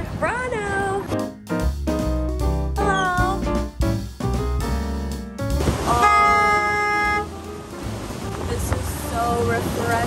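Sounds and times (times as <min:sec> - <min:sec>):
background music with beat and bass: 0:01.0 - 0:10.0.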